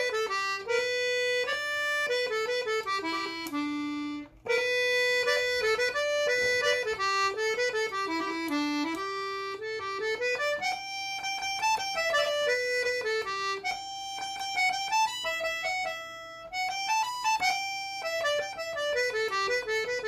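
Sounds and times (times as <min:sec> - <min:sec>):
accordion playing folk tune: 0:00.0 - 0:20.0.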